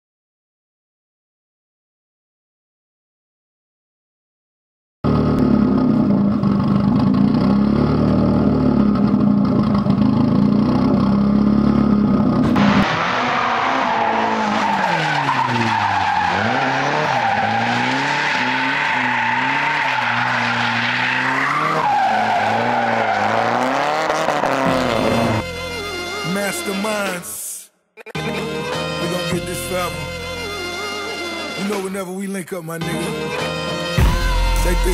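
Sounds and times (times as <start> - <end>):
turbocharged car engine revving: 5.0 - 26.2
tyre squeal: 12.7 - 24.0.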